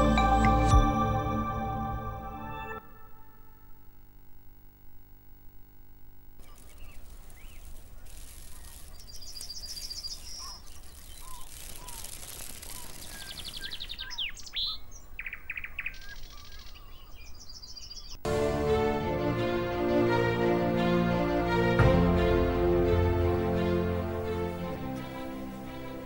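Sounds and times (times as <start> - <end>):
music: 0.0 - 3.7, 18.3 - 26.0
low background noise: 0.0 - 26.0
birds chirping and trilling: 6.4 - 18.2.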